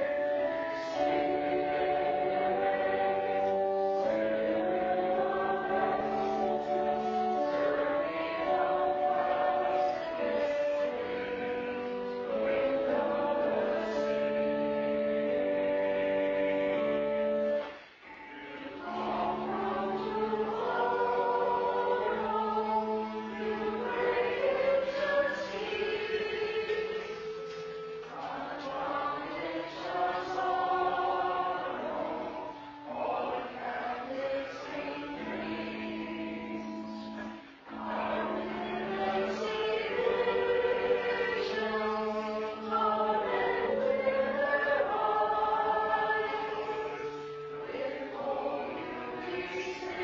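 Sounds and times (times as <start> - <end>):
congregation singing a hymn: 0.0 - 50.0
organ holding long notes: 0.0 - 50.0.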